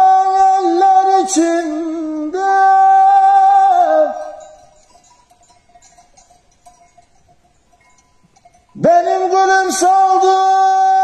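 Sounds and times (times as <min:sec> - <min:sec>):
sheep bells clinking: 0:00.0 - 0:11.0.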